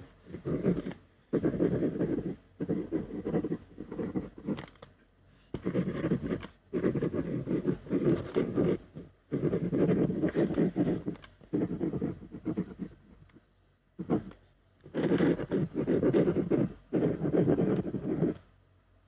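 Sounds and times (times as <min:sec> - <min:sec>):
pen writing on paper: 0:00.0 - 0:04.7, 0:05.5 - 0:13.0, 0:14.0 - 0:18.4.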